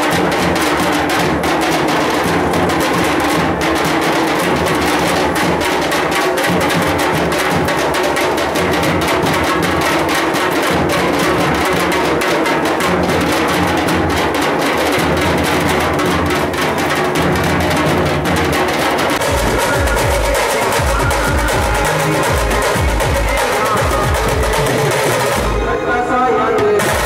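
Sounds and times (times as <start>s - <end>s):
rapid drumming: 0.0s - 27.0s.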